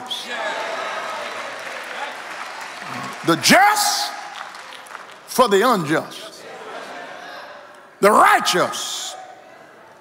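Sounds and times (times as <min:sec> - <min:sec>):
congregation applauding: 0:00.0 - 0:06.3.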